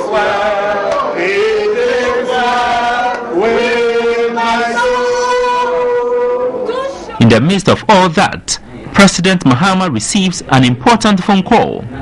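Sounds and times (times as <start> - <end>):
group of voices chanting: 0.0 - 6.7.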